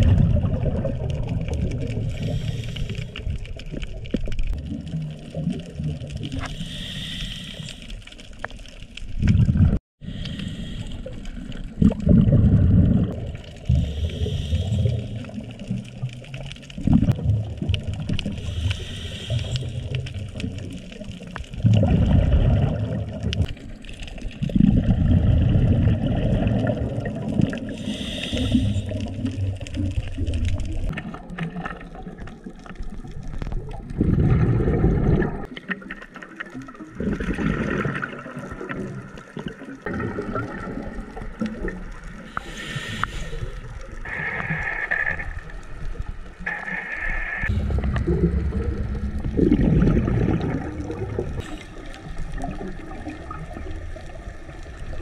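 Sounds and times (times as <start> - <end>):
exhaled bubbles gurgling: 0.0 - 55.0
hissing inhalations: 2.2 - 3.2, 6.4 - 8.0, 10.0 - 11.4, 13.7 - 15.4, 18.4 - 20.0, 27.7 - 29.1, 42.3 - 45.4.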